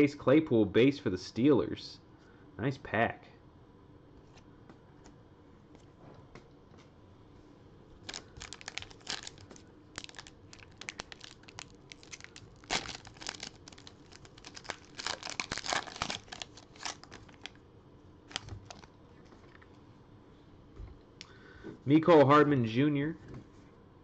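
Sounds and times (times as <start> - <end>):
wrapper tearing and crinkling: 8.0 - 17.6, 18.3 - 18.9.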